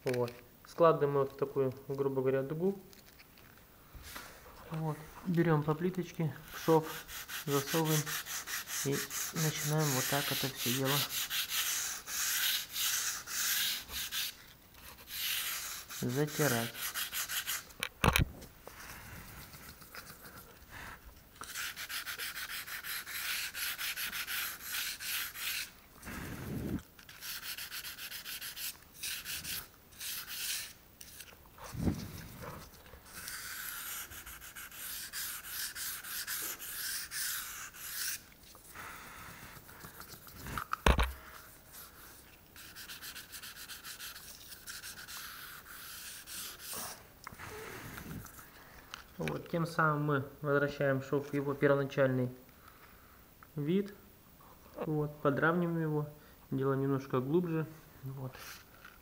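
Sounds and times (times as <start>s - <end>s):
sandpaper scratching on tile grout: 6.4s - 17.7s, 21.4s - 25.8s, 27.1s - 31.3s, 33.1s - 38.3s, 41.7s - 47.0s.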